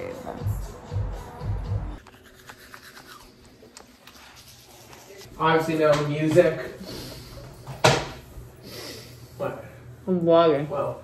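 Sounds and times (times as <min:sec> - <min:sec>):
toothbrush scrubbing teeth: 0:02.0 - 0:05.3.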